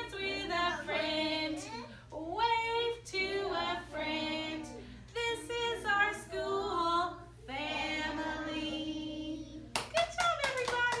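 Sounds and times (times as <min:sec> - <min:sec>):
children and teacher clapping: 0:09.7 - 0:11.0.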